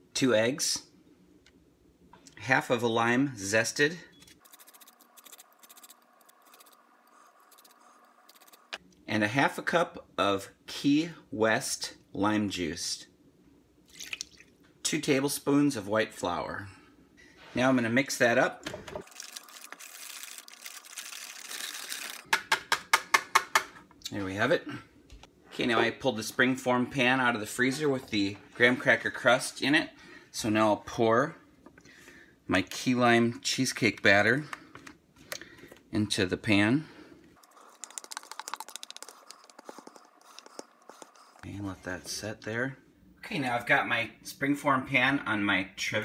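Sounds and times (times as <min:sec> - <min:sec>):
spatula scraping plastic bowl: 0:37.4 - 0:41.5
whisk swishing in batter: 0:37.4 - 0:41.5.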